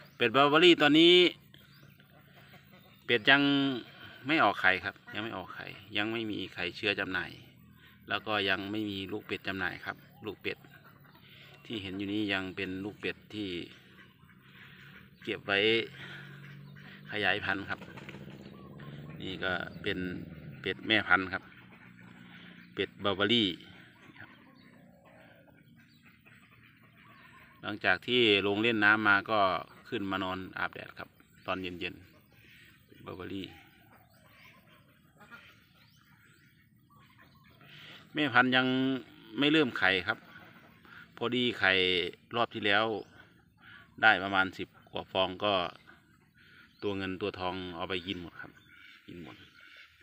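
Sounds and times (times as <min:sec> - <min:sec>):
man speaking: 0:00.0 - 0:01.4, 0:03.1 - 0:07.5, 0:11.6 - 0:13.8, 0:15.2 - 0:16.2, 0:17.1 - 0:17.8, 0:19.1 - 0:21.5, 0:22.8 - 0:23.8, 0:27.6 - 0:32.0, 0:38.1 - 0:40.2
faint duck calls: 0:00.0 - 0:50.0
faint outdoor background: 0:00.0 - 0:50.0.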